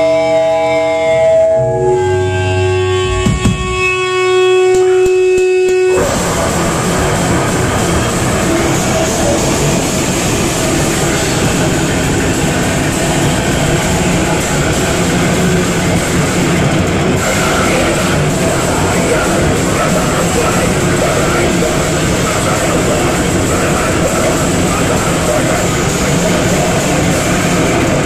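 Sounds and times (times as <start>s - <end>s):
held guitar note ringing: 0.0s - 6.2s
heavy rock band playing: 0.0s - 28.0s
drum hits: 3.1s - 4.0s.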